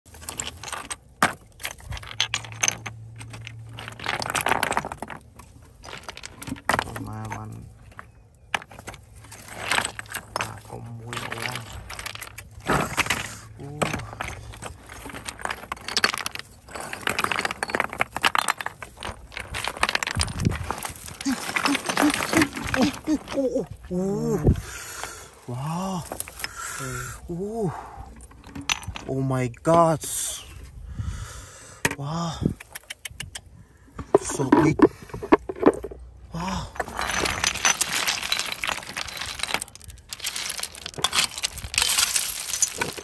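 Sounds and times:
stones clinking and clattering: 0:00.1 - 0:30.3, 0:31.9 - 0:43.0.

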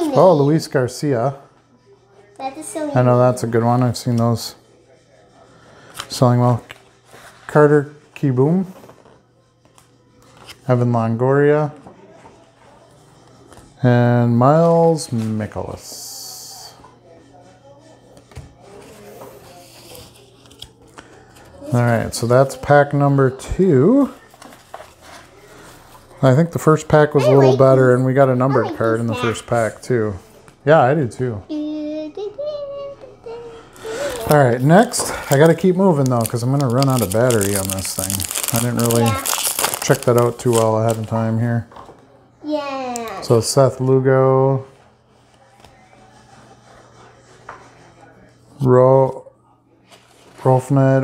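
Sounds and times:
trading cards rustling: 0:33.8 - 0:41.5.

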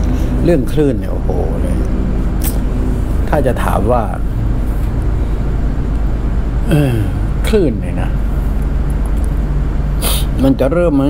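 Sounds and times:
constant hum: 0:00.0 - 0:11.0
low background rumble: 0:00.0 - 0:11.0.

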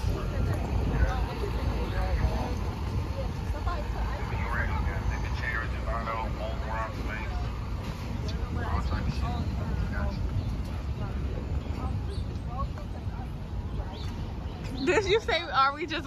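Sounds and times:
faint voices of people talking: 0:00.0 - 0:16.0
low rumble of road traffic: 0:00.0 - 0:16.0
truck passing: 0:00.0 - 0:16.0.

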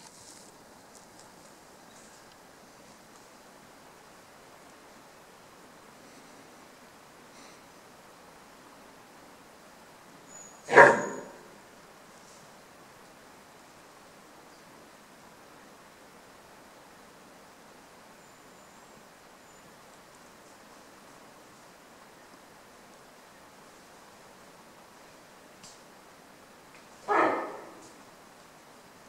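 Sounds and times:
faint bush ambience: 0:00.0 - 0:29.0.

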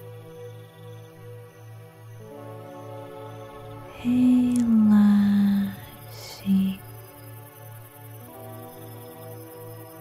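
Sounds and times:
soft new-age music: 0:00.0 - 0:10.0.

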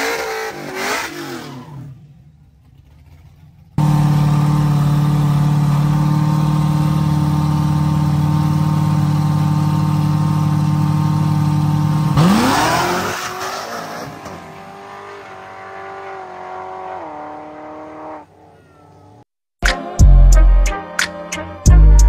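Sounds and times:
car burnout: 0:00.0 - 0:18.3
car engine droning at constant rpm: 0:00.1 - 0:13.0.

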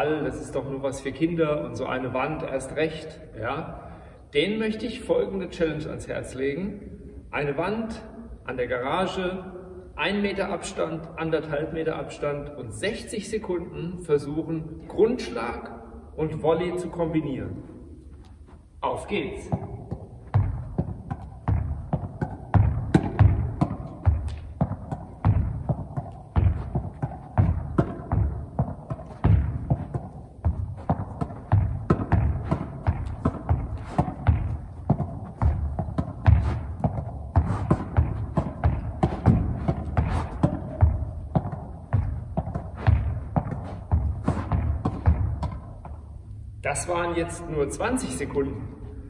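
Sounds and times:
racket hitting ball against wall: 0:19.3 - 0:46.3.

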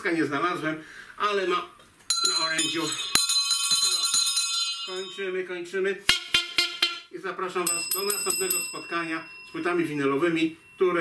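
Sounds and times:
small metal bell ringing: 0:02.1 - 0:05.6, 0:07.6 - 0:11.0.

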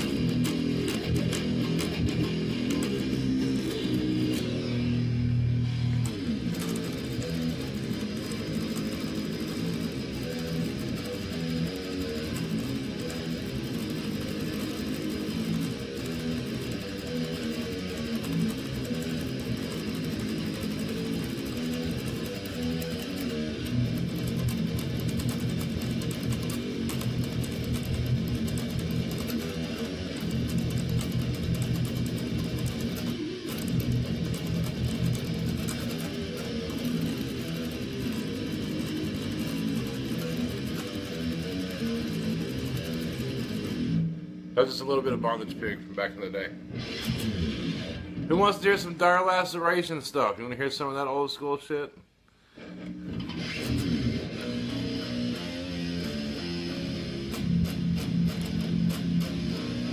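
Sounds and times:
electric guitar metal riff: 0:00.0 - 0:50.3, 0:52.4 - 0:59.9.

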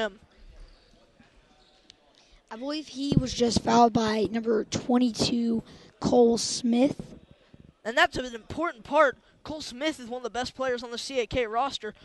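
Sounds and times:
gym background noise: 0:00.0 - 0:12.0.

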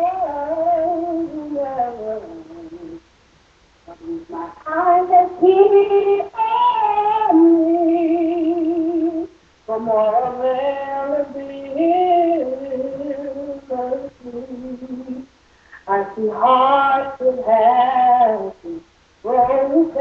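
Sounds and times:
woman singing unaccompanied: 0:00.0 - 0:03.1, 0:03.9 - 0:20.0.

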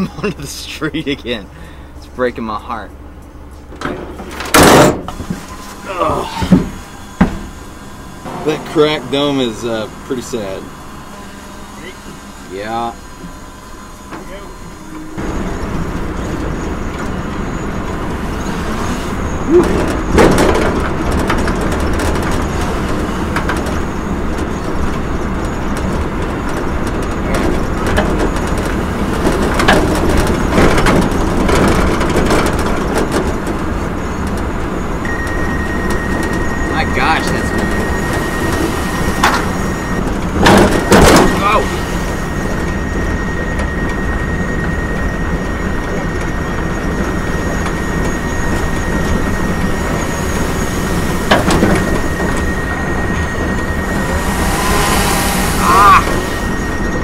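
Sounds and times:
truck road noise: 0:00.0 - 0:57.0
thin steady high tone: 0:47.9 - 0:57.0.

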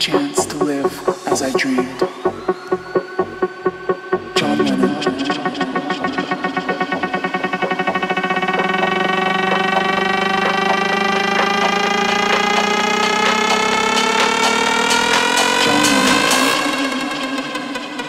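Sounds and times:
synth riser gliding upward: 0:00.0 - 0:18.0.

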